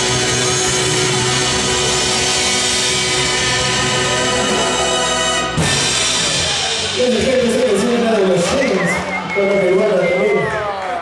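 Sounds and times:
drum kit: 0.0 - 9.8
bass: 0.0 - 11.0
keyboards: 0.0 - 11.0.

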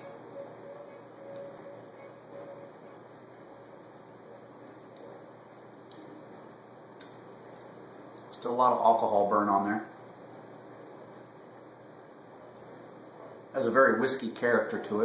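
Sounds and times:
faint hum: 0.0 - 15.0
low background hiss: 0.0 - 15.0.

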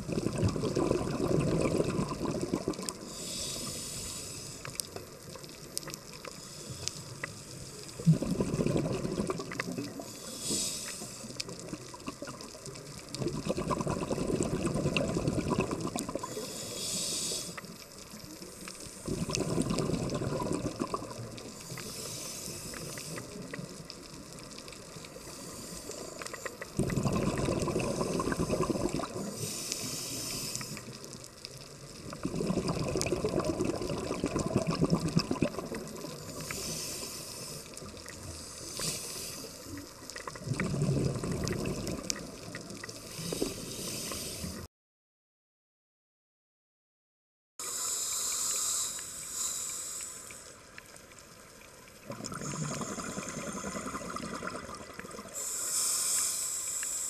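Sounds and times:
exhaled bubbles rushing: 0.0 - 3.0, 8.0 - 10.0, 13.1 - 16.3, 19.0 - 21.4, 26.8 - 29.4, 32.0 - 36.4, 40.1 - 43.4, 52.0 - 55.4
regulator hiss on inhale: 2.9 - 8.2, 9.6 - 12.0, 15.7 - 26.9, 27.5 - 32.2, 35.5 - 40.2, 41.8 - 44.7, 47.6 - 51.3, 52.3 - 57.0.

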